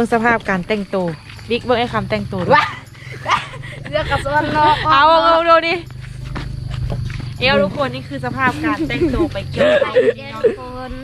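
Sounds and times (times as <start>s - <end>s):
woman speaking: 0.0s - 2.9s, 3.8s - 5.8s, 7.4s - 11.0s
steady low hum: 0.0s - 11.0s.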